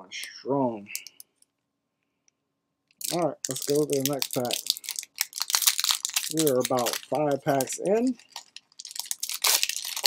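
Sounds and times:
foil wrapper crinkling: 3.0s - 10.0s.

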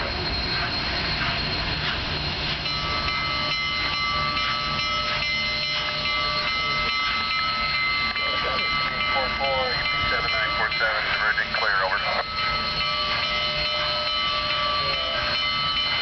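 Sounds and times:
steam locomotive rumble: 0.0s - 16.0s.

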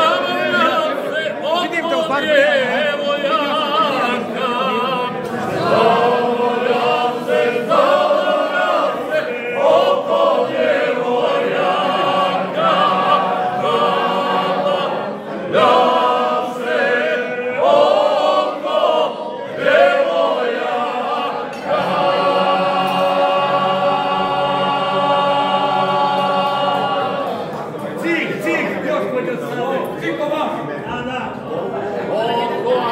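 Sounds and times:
men singing unaccompanied folk song: 0.0s - 27.5s.

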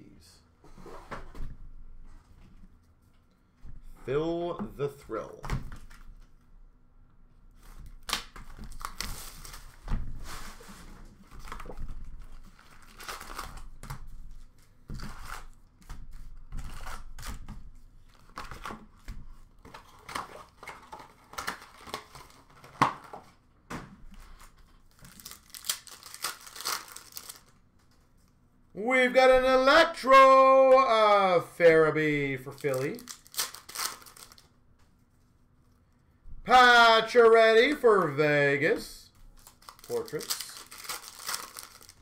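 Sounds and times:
cardboard and foil tearing: 12.4s - 13.7s, 24.2s - 27.5s, 32.5s - 34.5s, 39.4s - 42.0s.

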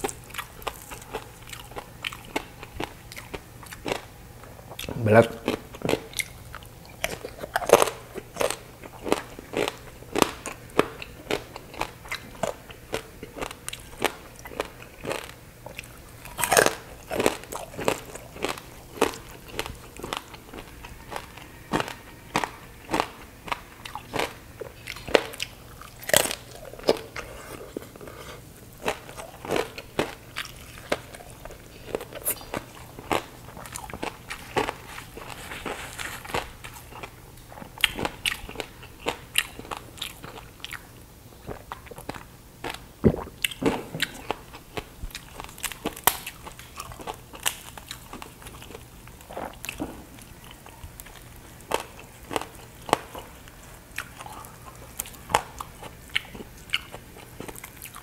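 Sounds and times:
crunchy pork skin being chewed: 0.0s - 58.0s.

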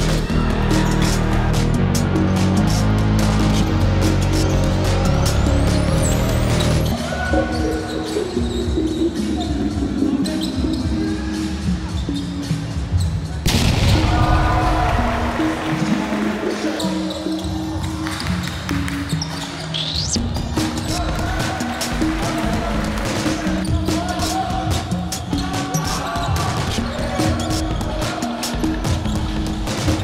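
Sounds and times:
music with held notes: 0.0s - 30.0s
sneaker squeaks: 5.8s - 13.4s, 16.5s - 20.2s, 24.8s - 28.0s.

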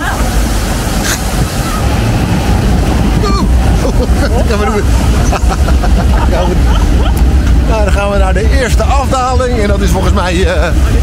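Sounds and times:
low conveyor rumble: 0.0s - 11.0s
rushing water: 0.0s - 11.0s.

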